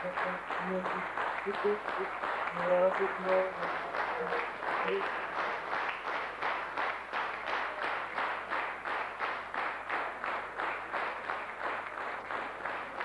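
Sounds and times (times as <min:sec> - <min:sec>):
audience clapping in unison: 0:00.0 - 0:13.0.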